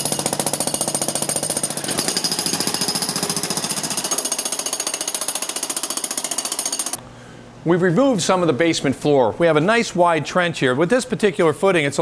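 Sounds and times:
jackhammer breaking concrete: 0:00.0 - 0:07.0.

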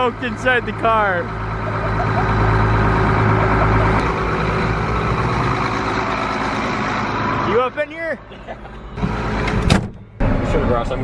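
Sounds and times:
diesel tractor engine under load: 0:00.0 - 0:11.0.

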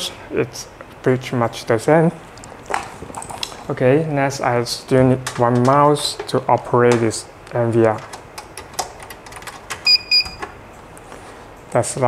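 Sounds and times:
short high electronic beeps: 0:09.9 - 0:10.4.

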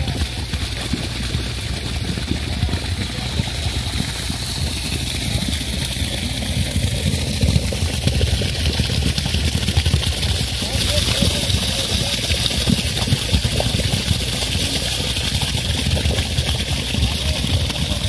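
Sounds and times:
engine idling: 0:00.0 - 0:18.0.

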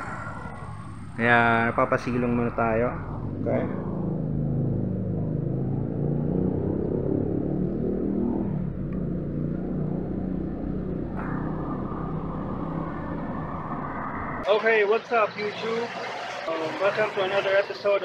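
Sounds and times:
vehicle engine rumbling: 0:00.0 - 0:18.0.

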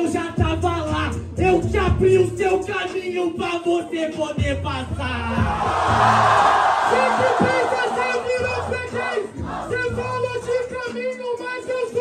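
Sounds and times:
looping beat melody: 0:00.0 - 0:12.0
crowd shouting and cheering: 0:05.3 - 0:12.0.

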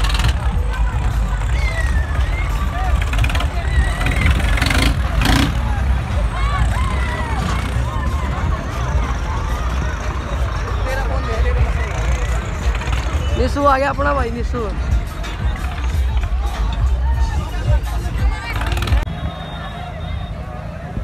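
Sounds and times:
crowd shouting: 0:00.0 - 0:13.3, 0:15.2 - 0:21.0
tractor engines rumbling under load: 0:00.0 - 0:21.0.

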